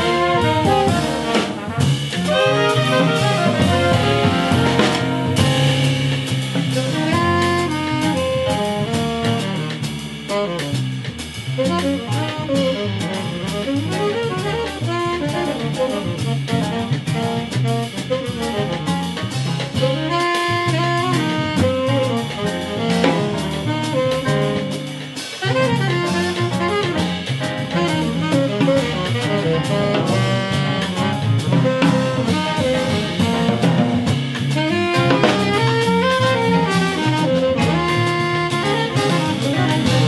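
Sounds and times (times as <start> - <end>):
drum kit piano and bass: 0.0 - 40.0
saxophones and trumpet: 0.0 - 40.0.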